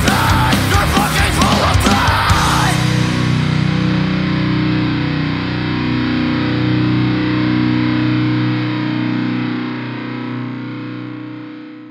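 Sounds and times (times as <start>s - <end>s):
distorted electric guitar chord ringing: 0.0s - 11.9s.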